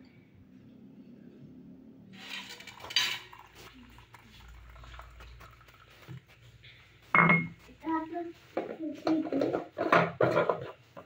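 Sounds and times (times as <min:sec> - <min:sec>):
crockery clattering: 0:07.2 - 0:07.6.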